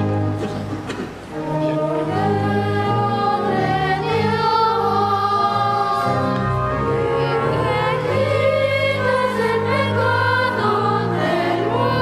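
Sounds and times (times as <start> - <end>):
sustained low accompanying notes: 0.0 - 12.0
church choir singing: 1.3 - 12.0.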